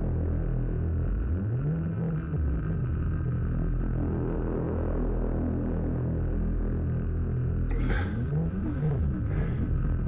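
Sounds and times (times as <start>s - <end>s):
deep electronic drone: 0.0s - 10.0s.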